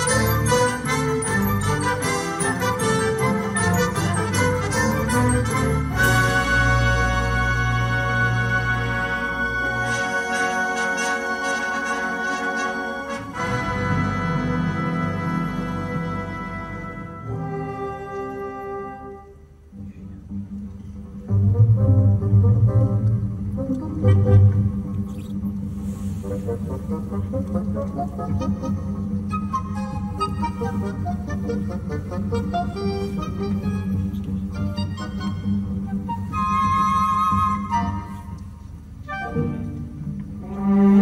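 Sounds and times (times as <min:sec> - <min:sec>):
orchestra playing: 0:00.0 - 0:41.0.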